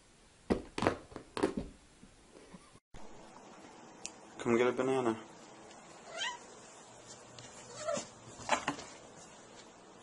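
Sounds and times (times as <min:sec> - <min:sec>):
cat meowing: 0:06.1 - 0:06.5.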